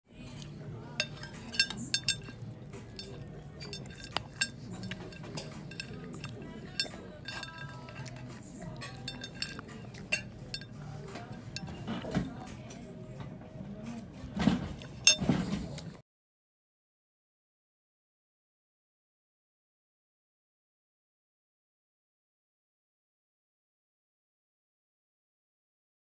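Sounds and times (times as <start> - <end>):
cutlery and dishes clinking: 0.4 - 12.8, 14.4 - 16.0.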